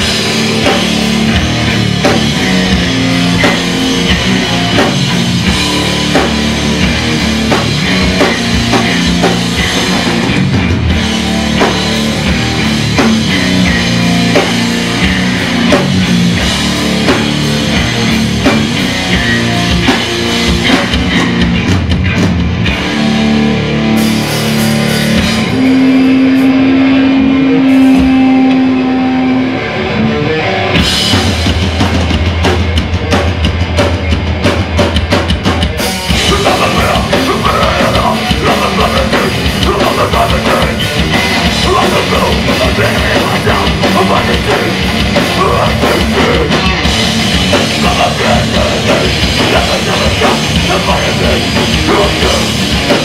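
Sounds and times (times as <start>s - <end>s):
drum kit heavy beat: 0.0s - 29.9s, 30.6s - 53.0s
bass guitar: 0.0s - 53.0s
distorted electric guitar: 0.0s - 53.0s
low rumble of band: 0.0s - 53.0s.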